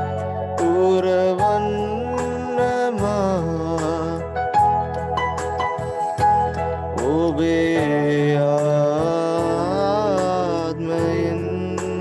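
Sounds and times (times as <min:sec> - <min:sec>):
electronic keyboard chords: 0:00.0 - 0:12.0.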